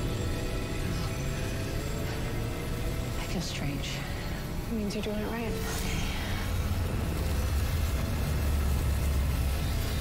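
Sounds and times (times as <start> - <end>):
deep rumbling energy hum: 0.0 - 10.0.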